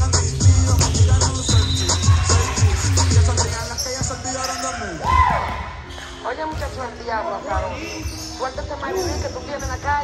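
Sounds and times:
background music: 0.0s - 10.0s
players' voices: 0.1s - 10.0s.

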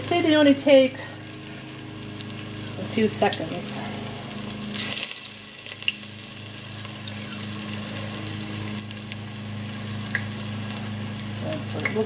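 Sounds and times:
deep-frying oil sizzling: 0.0s - 12.0s.

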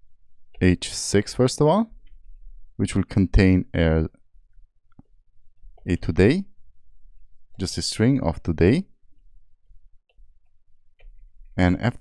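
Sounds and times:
faint keystroke on a keyboard: 1.9s - 2.6s, 9.1s - 12.0s.

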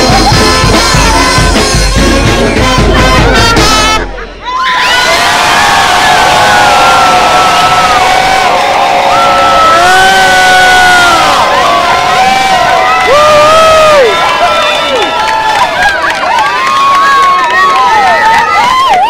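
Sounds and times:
crowd cheering and shouting: 0.0s - 19.0s.

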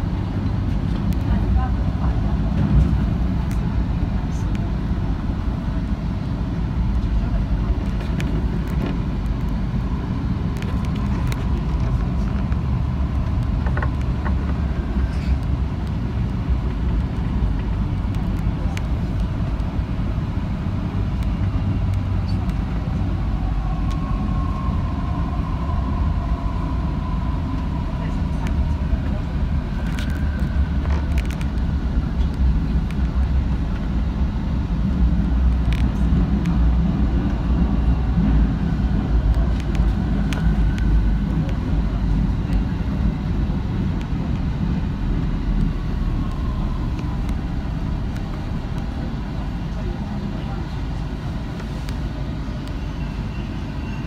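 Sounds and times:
metro train rumbling on track: 0.0s - 54.0s.

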